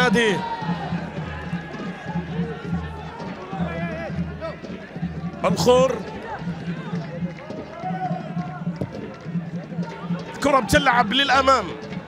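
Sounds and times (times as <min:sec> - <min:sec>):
distant shouts and voices: 0:00.0 - 0:12.0.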